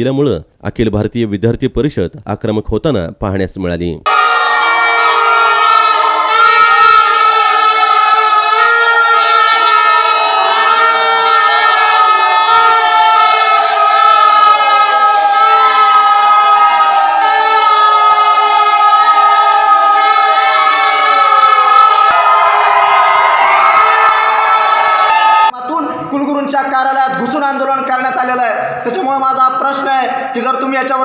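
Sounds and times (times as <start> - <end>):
plastic toy trumpets honking: 4.1 - 12.0.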